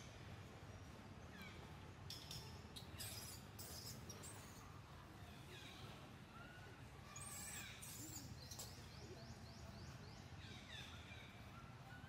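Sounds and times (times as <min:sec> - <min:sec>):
bird chirp: 0:01.3 - 0:04.6, 0:07.2 - 0:11.5.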